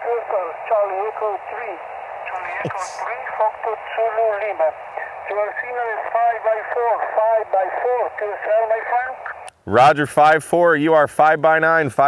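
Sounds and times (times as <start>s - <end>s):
radio voice through speaker: 0.0s - 9.2s
steady radio band hiss: 0.0s - 9.9s.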